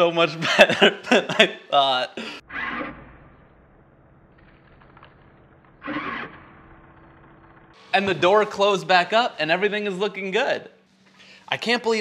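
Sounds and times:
man's voice: 8.0s - 10.7s, 11.5s - 12.0s.

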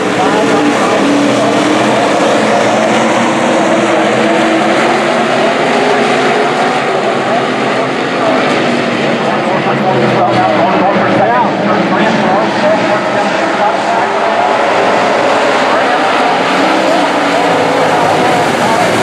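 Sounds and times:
race car engines droning: 0.0s - 19.0s.

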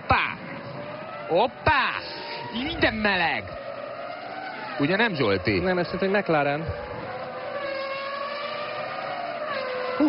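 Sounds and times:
racing car engine passing: 0.0s - 10.0s.

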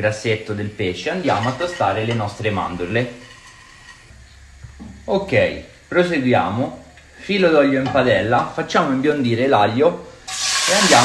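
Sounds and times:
low steady hum: 0.0s - 10.3s
nuts sizzling in a frying pan: 0.0s - 11.0s.

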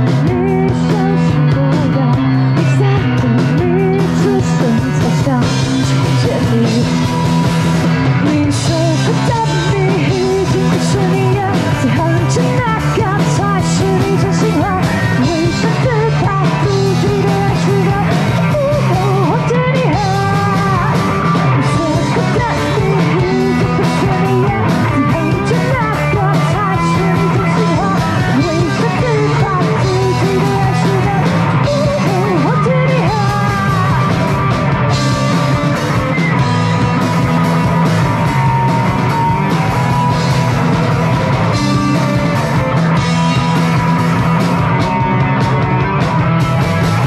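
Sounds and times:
woman singing lead vocal: 0.0s - 7.3s, 7.9s - 37.2s
drum kit: 0.0s - 47.0s
electric guitars: 0.0s - 47.0s.

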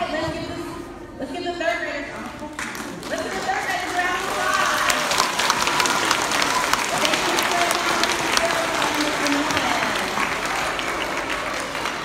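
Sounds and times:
children applauding: 2.6s - 12.0s.

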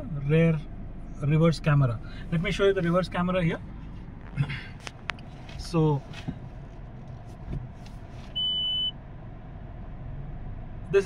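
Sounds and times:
car idling hum: 0.0s - 11.0s
short high-pitched beep: 8.4s - 8.9s.

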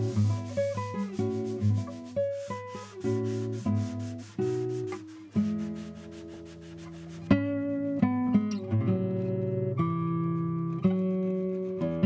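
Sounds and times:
hand sanding on wood: 0.0s - 7.4s
classical guitar melody: 0.0s - 12.0s.

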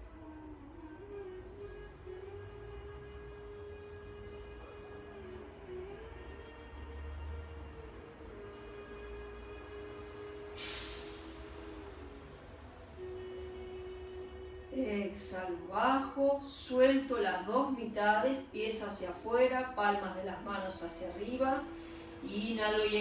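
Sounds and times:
low hum: 0.0s - 23.0s
meditation drone music: 0.0s - 23.0s
brief hiss: 10.0s - 12.9s.

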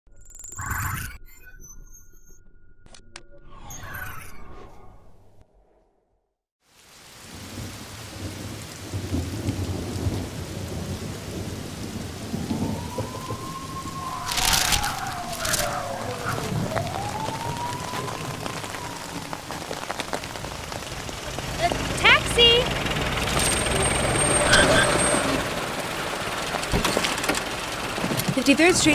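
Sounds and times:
heavy rain: 6.6s - 28.9s
rolling thunder: 7.2s - 28.6s
sharp thunder crack: 7.3s - 27.2s.

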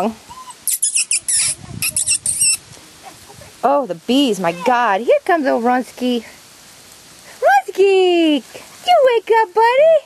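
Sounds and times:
puppies squealing: 0.3s - 2.6s.

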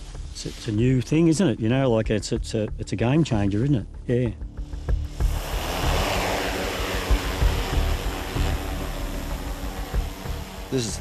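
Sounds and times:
drone propellers whirring: 4.6s - 11.0s
prop wash blowing on microphone: 5.0s - 11.0s.

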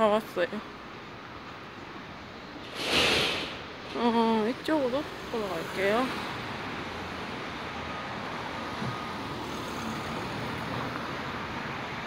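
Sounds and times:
street traffic passing cars: 0.0s - 12.0s.

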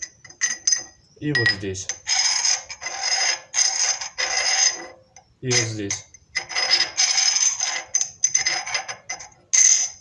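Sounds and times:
thin high metallic ringing: 0.4s - 1.9s
tool bit scraping steel bar: 2.0s - 5.0s, 5.6s - 10.0s.

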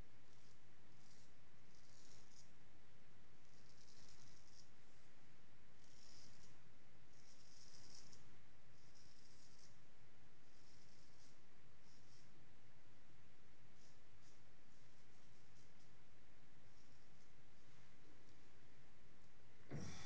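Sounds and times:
razor scraping stubble: 5.8s - 6.6s.

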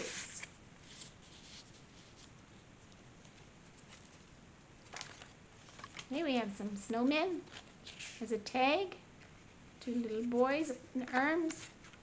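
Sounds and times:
page turning: 0.0s - 2.4s, 4.8s - 6.1s, 7.5s - 8.2s
paper rustling: 0.0s - 6.2s, 7.4s - 8.3s, 11.4s - 12.0s.

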